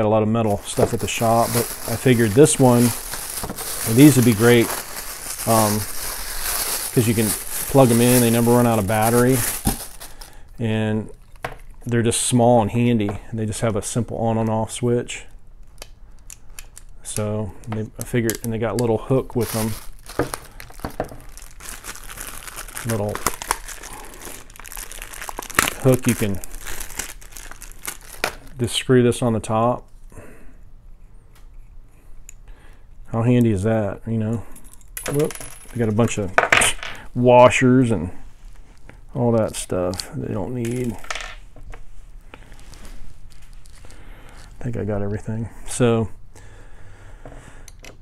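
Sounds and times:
plastic bag crinkling: 0:00.5 - 0:10.5, 0:18.7 - 0:28.6, 0:39.4 - 0:41.3, 0:42.3 - 0:44.7.

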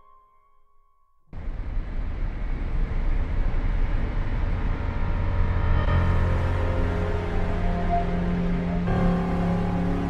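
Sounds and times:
wind noise: 0:01.4 - 0:07.6
motorcycle engine rumble: 0:01.4 - 0:07.8.

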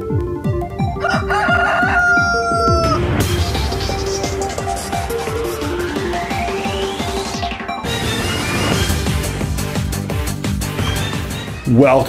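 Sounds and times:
electronic music with kick drum: 0:00.0 - 0:12.0
rooster crowing: 0:00.9 - 0:03.2.

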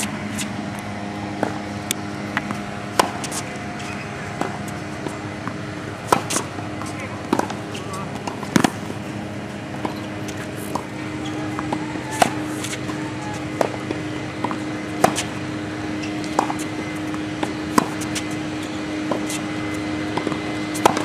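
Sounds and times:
racket hitting tennis ball: 0:00.0 - 0:00.6, 0:01.3 - 0:21.0
low background hum: 0:00.0 - 0:21.0
tennis ball bouncing: 0:01.3 - 0:21.0.

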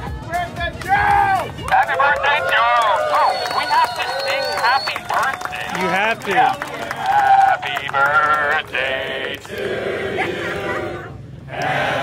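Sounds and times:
voices singing held notes: 0:07.6 - 0:12.0.

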